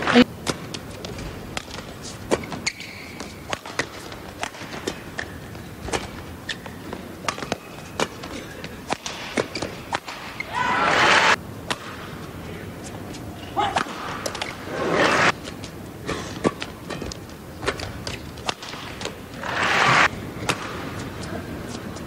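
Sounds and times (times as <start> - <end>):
rackets striking shuttlecock: 7.2 - 8.2.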